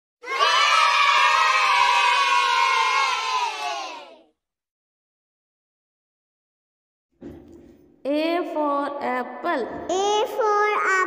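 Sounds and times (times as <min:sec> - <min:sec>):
children cheering and shouting: 0:00.2 - 0:04.3.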